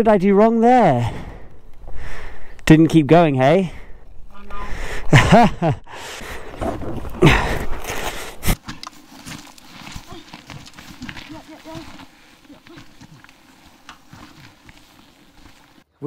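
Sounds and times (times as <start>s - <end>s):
shuffling: 6.2s - 15.9s
footsteps on gravel: 6.3s - 15.9s.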